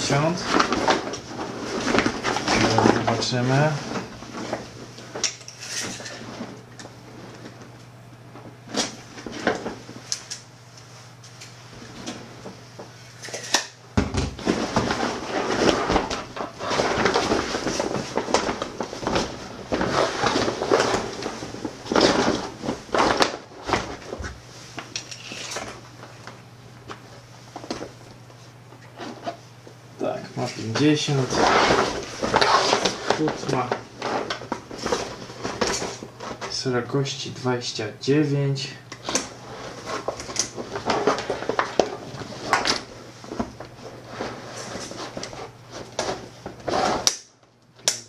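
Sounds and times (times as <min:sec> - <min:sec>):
nylon bag rustling and crinkling: 0:14.4 - 0:24.7, 0:31.1 - 0:36.5, 0:39.3 - 0:47.0.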